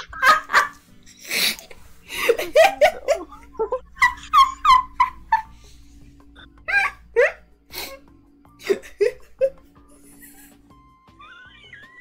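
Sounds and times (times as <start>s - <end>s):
person giggling: 1.5s - 5.5s.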